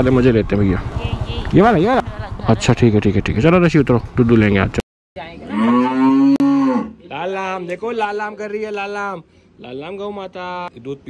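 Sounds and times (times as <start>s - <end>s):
cow mooing: 5.4s - 7.0s.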